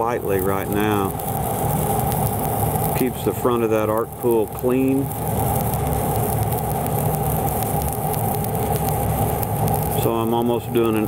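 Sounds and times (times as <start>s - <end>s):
welding arc crackling: 0.0s - 11.0s.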